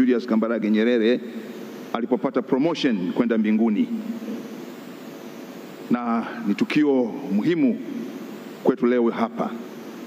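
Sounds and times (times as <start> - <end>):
man speaking over loudspeaker: 0.0 - 1.2, 1.9 - 4.2, 5.9 - 8.0, 8.6 - 9.6
faint hall room noise hiss: 0.0 - 10.0.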